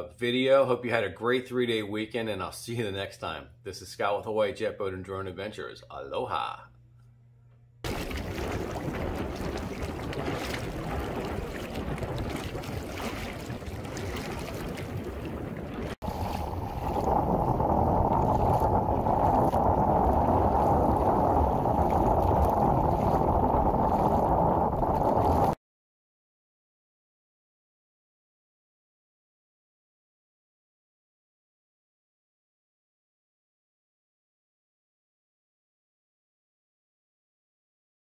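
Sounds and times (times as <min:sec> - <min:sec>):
water sloshing and splashing: 0:07.8 - 0:25.6
wind buffeting microphone: 0:07.9 - 0:25.6.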